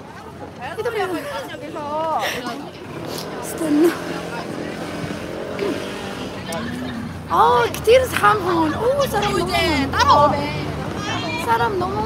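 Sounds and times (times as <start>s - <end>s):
crowd voices: 0.0s - 12.0s
vehicle engine humming: 0.0s - 12.0s.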